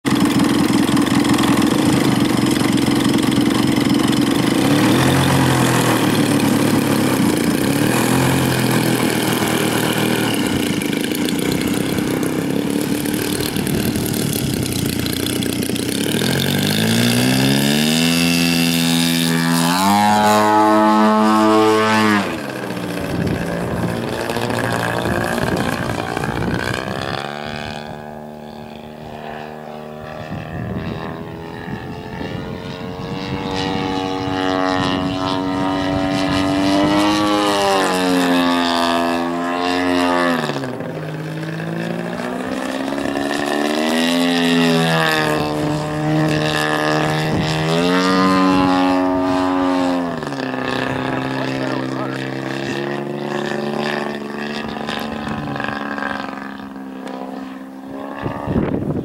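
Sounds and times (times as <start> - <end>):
model airplane engine: 0.0 - 59.0.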